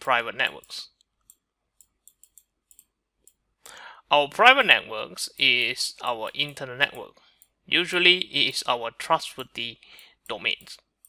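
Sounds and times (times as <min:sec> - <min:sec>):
soft in-breath: 0:03.6 - 0:04.1.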